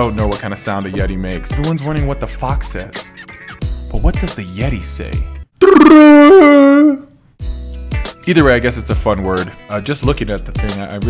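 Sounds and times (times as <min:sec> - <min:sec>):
man howling: 0:05.6 - 0:07.1.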